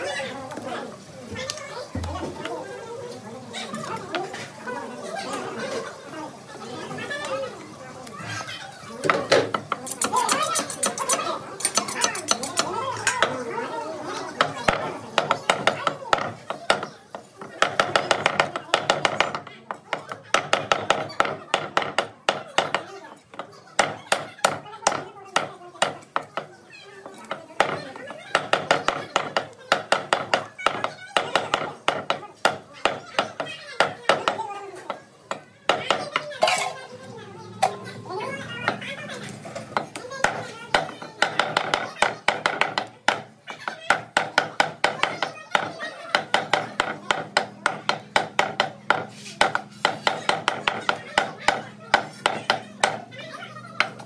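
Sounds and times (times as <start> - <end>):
children's voices: 0.0 - 54.0
meat cleaver chopping on wood: 43.9 - 53.1.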